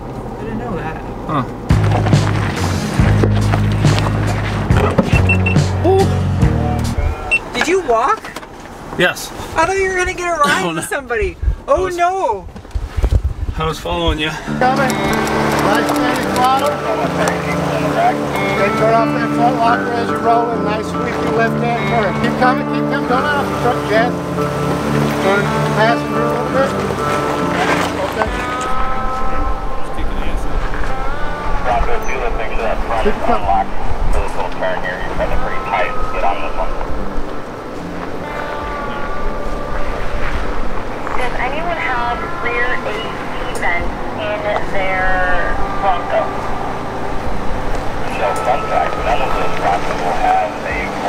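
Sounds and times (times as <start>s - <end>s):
engine low rumble: 0.0s - 9.7s
indistinct voices: 14.0s - 51.0s
drivetrain whine: 14.4s - 51.0s.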